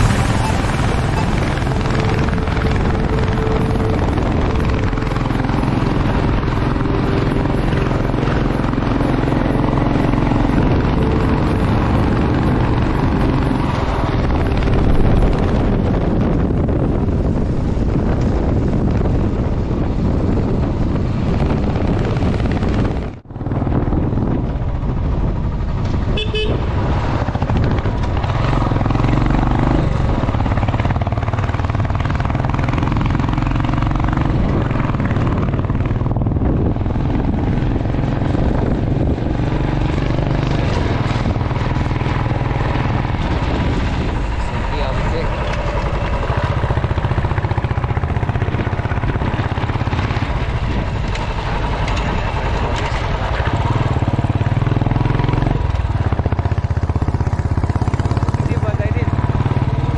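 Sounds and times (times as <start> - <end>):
motorcycle engine running: 0.0 - 59.9
wind rushing over microphone: 0.0 - 59.9
horn toot: 26.1 - 26.7.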